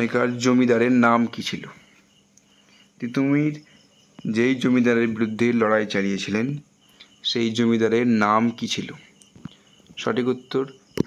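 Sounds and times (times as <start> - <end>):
man speaking: 0.0 - 1.9, 3.0 - 9.2, 10.0 - 10.8
faint high pulsing chirp: 0.0 - 11.0.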